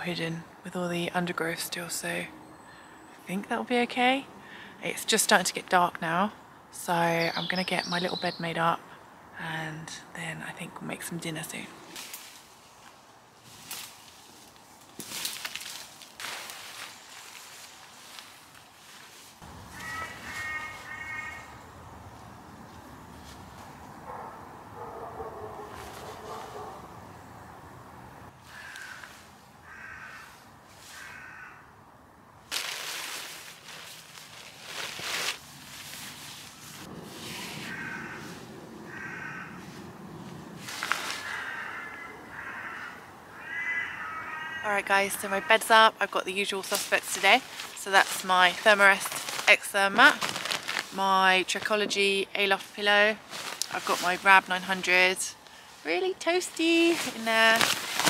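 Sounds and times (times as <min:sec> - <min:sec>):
camping gear rustling: 0:11.9 - 0:21.4, 0:22.1 - 0:26.8, 0:32.4 - 0:41.8, 0:45.8 - 0:58.0
crows cawing: 0:19.6 - 0:21.8, 0:28.4 - 0:31.8, 0:37.4 - 0:39.8, 0:41.0 - 0:45.9.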